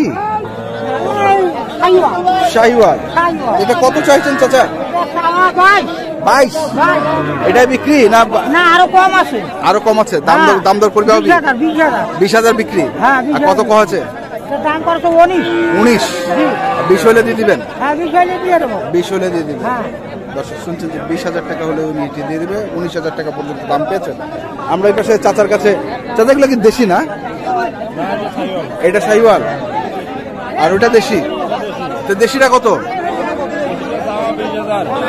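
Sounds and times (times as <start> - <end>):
men talking over one another: 0.0 - 35.0.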